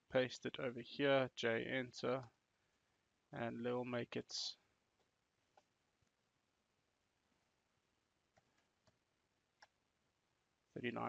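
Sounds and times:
man speaking: 0.1s - 2.3s, 3.4s - 4.6s, 10.8s - 11.0s.

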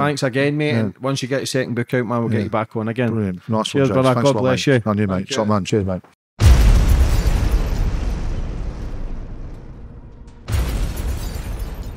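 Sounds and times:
explosion boom with rumbling tail: 6.4s - 11.9s.

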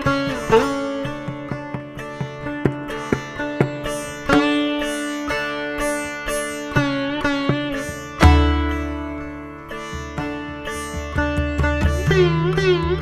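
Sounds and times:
sitar plucked notes: 0.0s - 13.0s.

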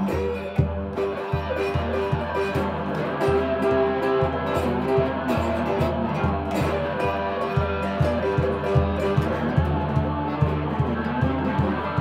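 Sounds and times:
blues slide guitar music: 0.0s - 12.0s
low thumping beat: 0.0s - 12.0s.

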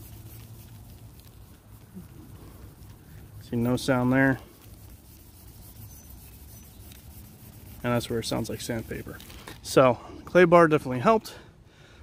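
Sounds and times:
plastic bag rubbing on car paint: 0.0s - 9.7s.

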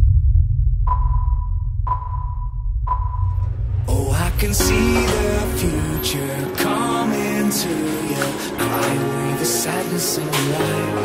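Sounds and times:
low bass drone: 0.0s - 7.9s
electronic sonar pings: 0.7s - 6.2s.

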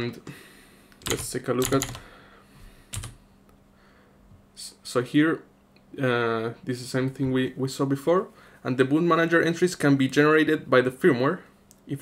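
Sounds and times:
faint steady hum: 0.0s - 12.0s
computer keyboard key press: 1.0s - 2.0s, 2.9s - 3.2s.

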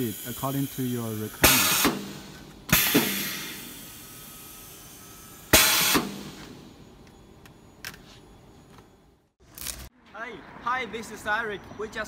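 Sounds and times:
compressed air hissing: 0.0s - 6.4s.

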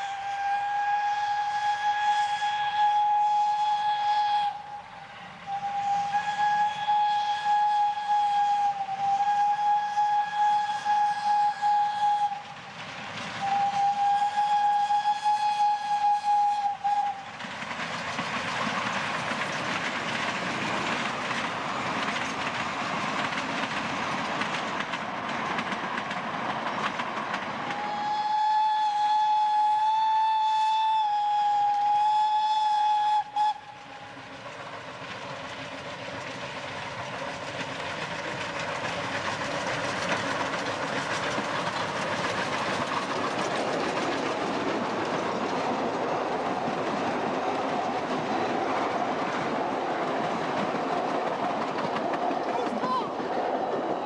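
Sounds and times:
steam whistle: 0.0s - 12.7s, 13.3s - 17.4s, 27.7s - 34.3s
steam train running on track: 0.0s - 54.0s.

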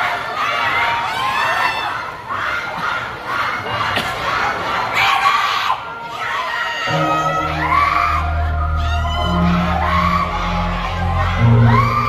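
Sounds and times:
crowd screaming and cheering: 0.0s - 12.0s.

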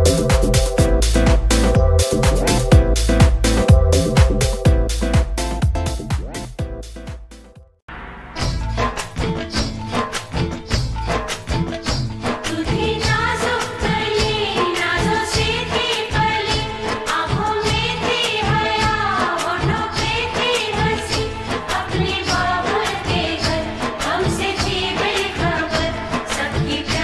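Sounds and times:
full musical accompaniment: 0.0s - 7.6s, 8.4s - 27.0s.

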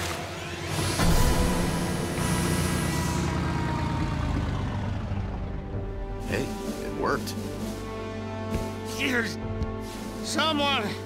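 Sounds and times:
dramatic cartoon music: 0.0s - 11.0s
motor rumble: 0.3s - 8.8s.

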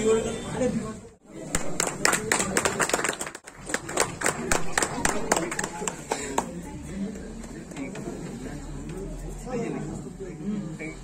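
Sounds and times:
group of people clapping: 1.4s - 6.7s.

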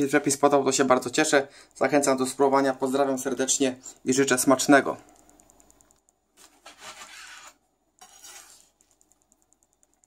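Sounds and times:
knife scraping cutting board: 6.4s - 8.8s.

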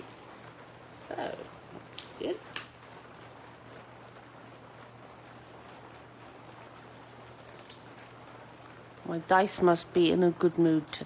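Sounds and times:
faint steady hiss: 0.0s - 11.0s
low steady hum: 0.0s - 11.0s.

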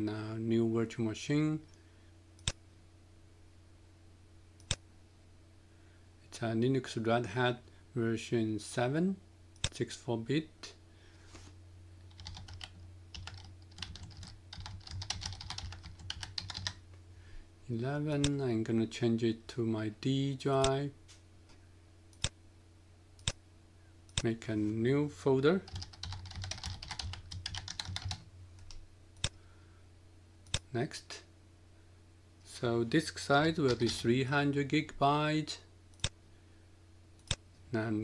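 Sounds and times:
low steady hum: 0.0s - 38.0s
typing on computer keyboard: 12.1s - 16.8s, 25.7s - 28.8s.

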